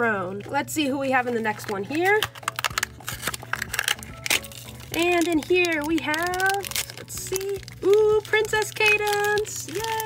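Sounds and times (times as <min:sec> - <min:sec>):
plastic foil packet crackling: 0:01.2 - 0:10.0.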